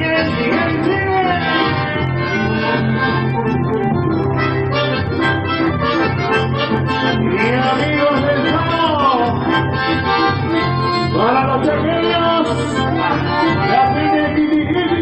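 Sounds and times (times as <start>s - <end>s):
accordion and bandoneon chords: 0.0s - 15.0s
electric bass line: 0.0s - 15.0s.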